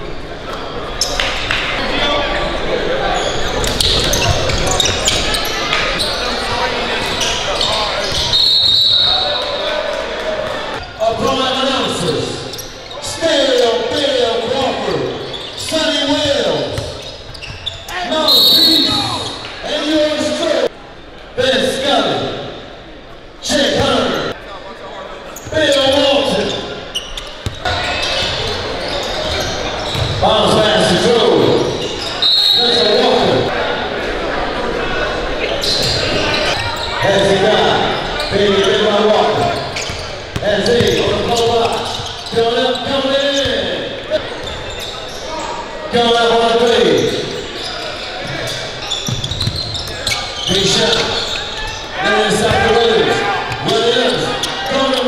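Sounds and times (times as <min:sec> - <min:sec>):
voices in a large hall: 0:00.0 - 0:55.0.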